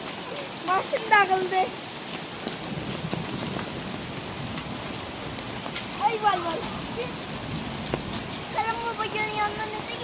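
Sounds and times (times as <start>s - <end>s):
heavy rain and hail on foliage: 0.0s - 10.0s.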